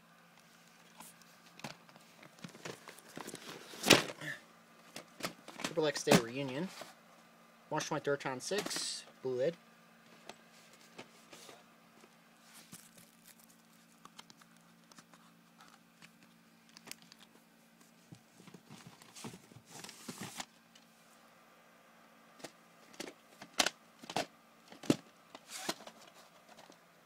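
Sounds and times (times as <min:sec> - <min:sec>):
plastic tapes rustling and clicking: 0:00.8 - 0:04.2, 0:12.5 - 0:17.3, 0:22.4 - 0:26.8.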